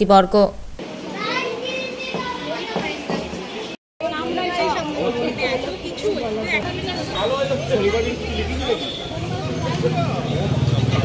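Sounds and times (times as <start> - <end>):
woman's voice: 0.0 - 0.6
children talking at once: 1.0 - 3.3.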